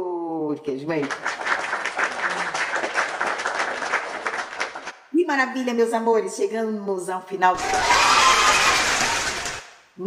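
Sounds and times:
applause: 0.9 - 5.0, 7.6 - 9.7.

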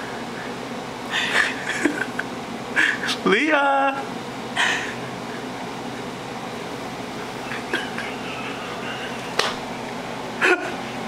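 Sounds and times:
household appliance humming: 0.0 - 11.0.

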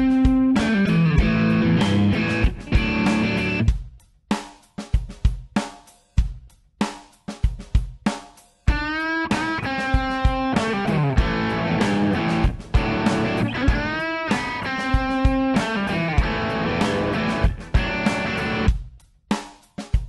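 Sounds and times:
electric guitar lead with string bends: 0.0 - 3.7, 8.7 - 18.7.

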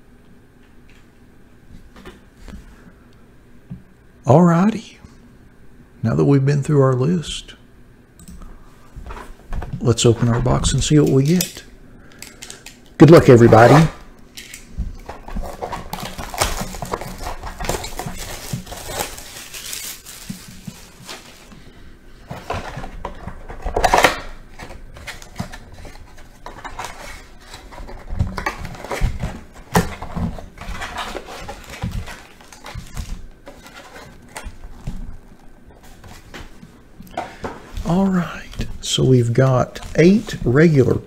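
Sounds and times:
foil packs rustling: 13.0 - 13.9, 14.9 - 41.0
cardboard rustling: 14.8 - 41.0
plastic wrap crinkling: 14.9 - 21.7, 23.8 - 36.6.

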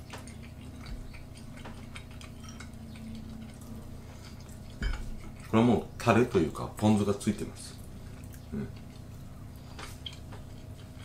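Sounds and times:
chewing: 0.0 - 6.8, 7.7 - 11.0
steady low hum: 0.0 - 11.0.

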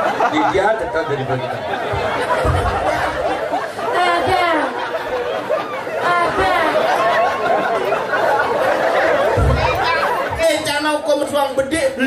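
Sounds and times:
crowd chatter: 0.0 - 12.0
woman talking into a microphone: 3.9 - 4.8, 6.0 - 6.8.

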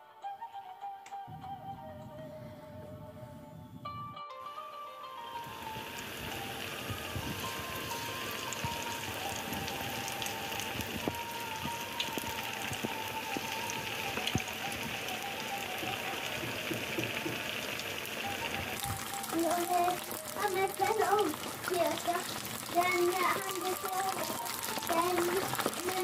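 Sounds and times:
hot oil sizzling with pops: 5.2 - 26.0.

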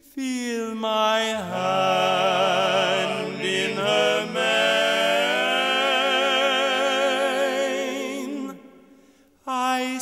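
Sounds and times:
men singing in close harmony: 0.6 - 8.9.

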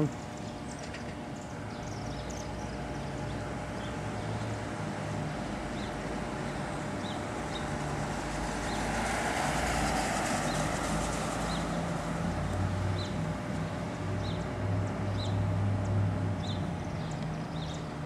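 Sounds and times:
low street hum and rush: 0.0 - 18.0.

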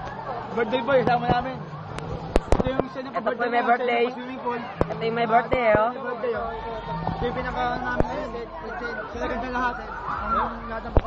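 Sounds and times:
people chattering and calling out: 0.0 - 11.0.

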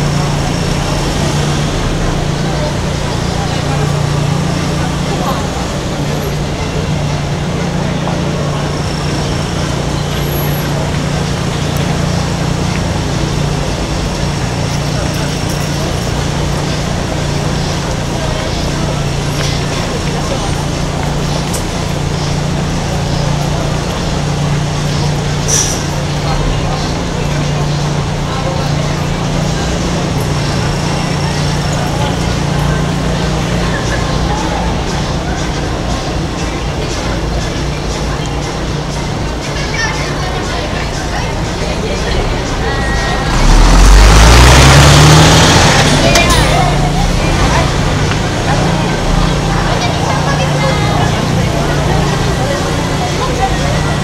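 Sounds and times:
crowd chatter: 0.0 - 54.0
passing traffic: 0.0 - 54.0.

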